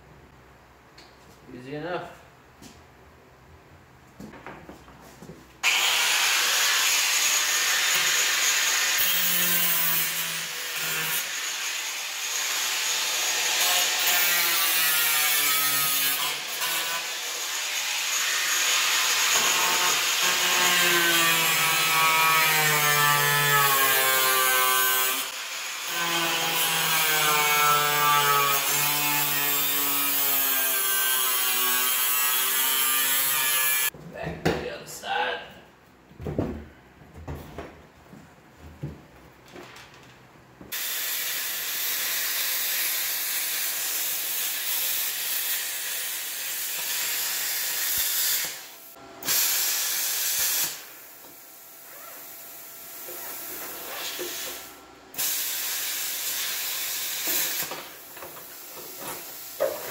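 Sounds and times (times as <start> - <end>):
angle grinder cutting metal: 5.6 - 33.9, 40.7 - 51.0, 53.0 - 58.1.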